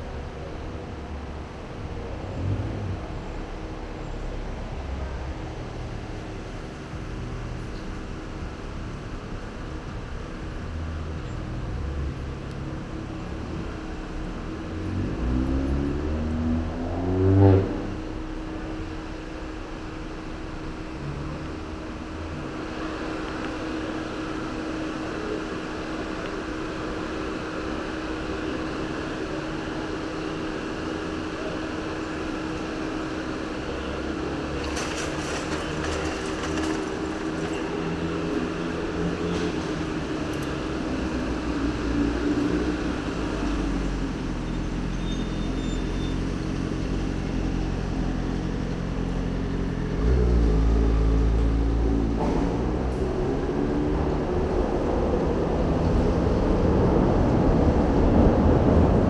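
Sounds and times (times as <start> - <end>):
traffic hum: 0.0 - 59.0.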